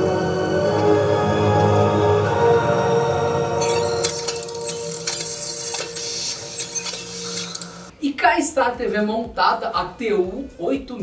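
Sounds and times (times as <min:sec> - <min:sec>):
mechanical clicks and whirs: 0:03.6 - 0:07.9.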